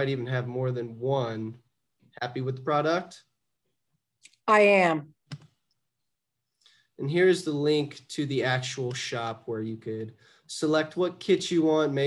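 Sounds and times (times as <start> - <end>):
computer mouse click: 5.3 - 5.8.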